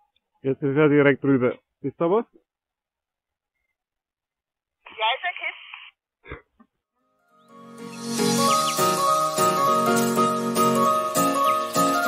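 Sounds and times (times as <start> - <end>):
background music: 7.0 - 12.0.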